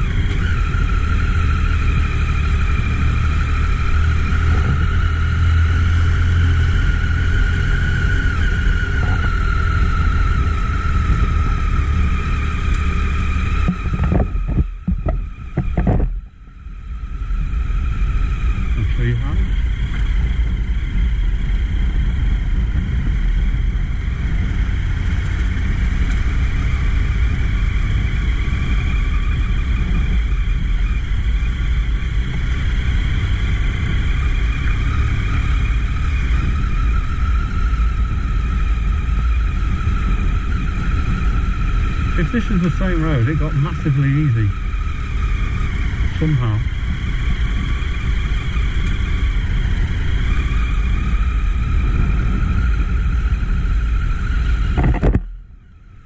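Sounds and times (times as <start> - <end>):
motorcycle engine running: 0.0 - 56.0
wind rush on microphone: 0.0 - 56.0.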